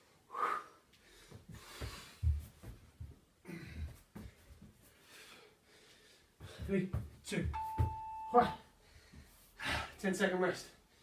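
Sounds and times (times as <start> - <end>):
electronic timer beep: 7.6 - 8.6.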